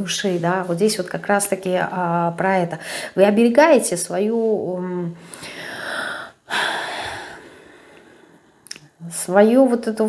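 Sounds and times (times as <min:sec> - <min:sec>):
woman breathing in: 0:02.8 - 0:03.2, 0:05.2 - 0:08.6.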